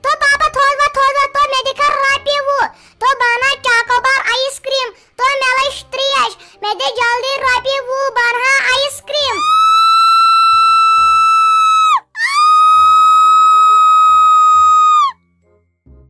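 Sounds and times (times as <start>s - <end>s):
high-pitched cartoon voice: 0.0s - 9.6s
faint background music: 0.0s - 16.0s.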